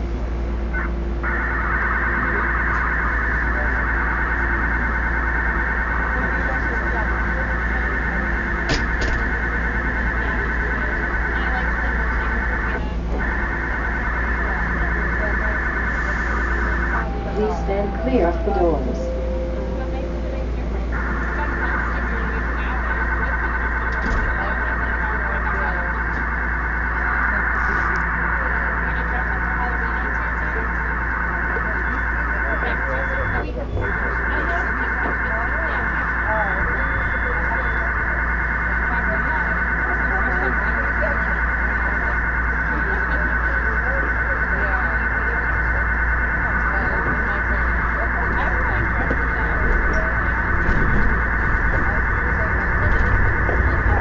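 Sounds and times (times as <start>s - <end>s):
low rumble of moving train: 0.0s - 54.0s
buzzing warbling data signal: 0.7s - 54.0s.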